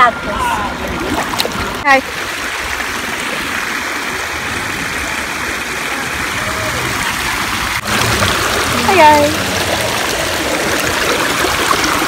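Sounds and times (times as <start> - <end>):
creek water rushing over rocks: 0.0 - 12.0.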